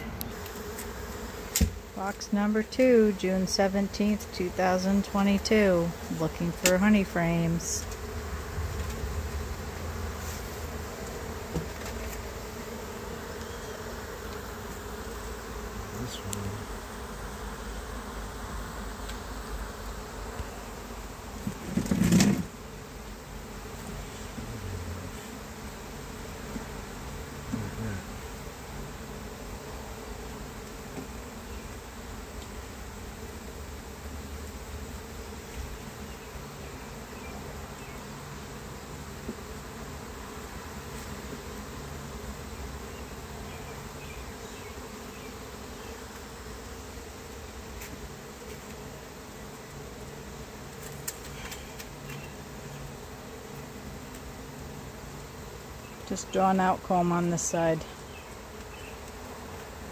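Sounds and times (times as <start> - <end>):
honey bees buzzing: 0.0 - 59.9.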